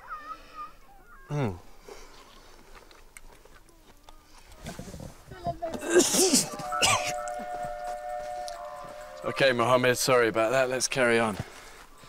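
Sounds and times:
held music chord: 0:06.5 - 0:10.9.

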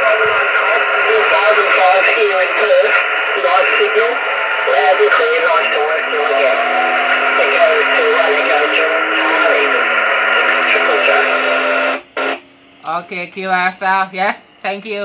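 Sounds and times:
person talking over radio: 0:00.0 - 0:12.0
radio hiss: 0:00.0 - 0:15.0.

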